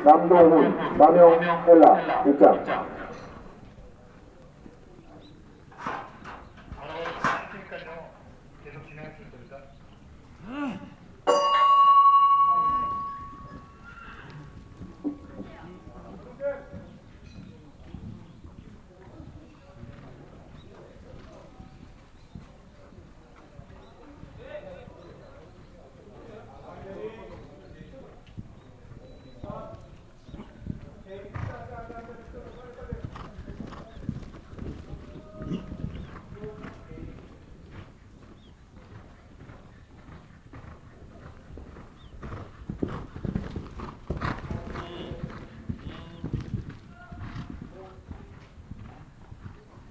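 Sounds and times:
bell ringing: 11.3 - 14.3
horse hoofbeats on sand: 12.6 - 25.7, 26.5 - 49.9.

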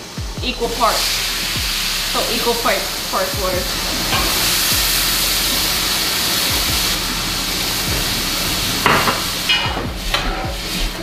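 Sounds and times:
rice sizzling in hot oil: 0.8 - 11.0.

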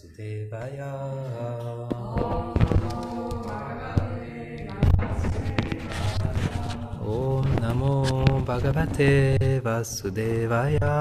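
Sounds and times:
mantra chanted in long notes: 0.0 - 11.0
microphone handling knocks: 1.9 - 9.6.

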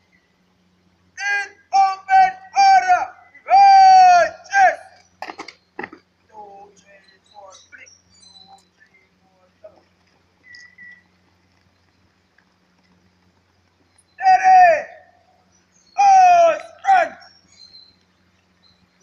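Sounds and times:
person shouting commands: 1.2 - 5.0, 14.2 - 15.2, 16.0 - 17.3.

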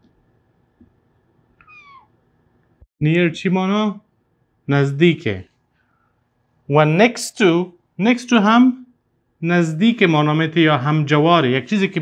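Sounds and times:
marker squeak: 1.6 - 2.1.

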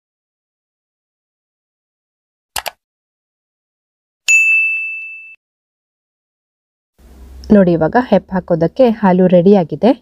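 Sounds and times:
bright bell ding: 4.3 - 5.4.

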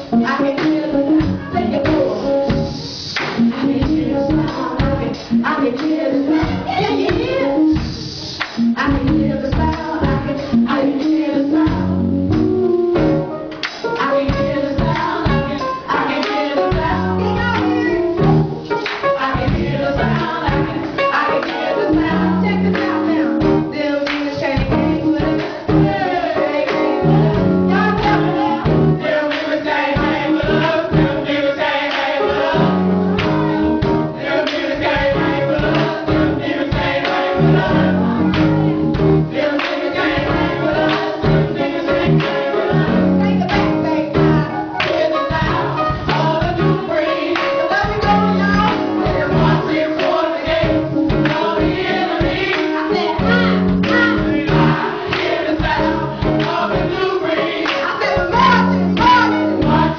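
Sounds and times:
group singing gospel music: 0.0 - 59.9
instrumental accompaniment with beat: 0.0 - 59.9.

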